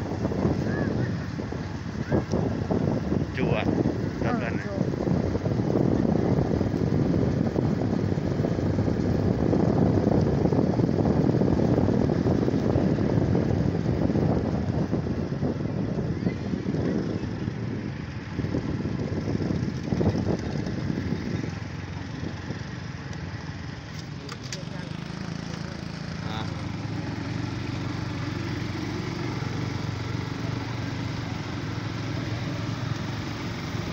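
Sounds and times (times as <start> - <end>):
motor scooter engine: 0.0 - 33.9
wind on microphone: 0.0 - 33.9.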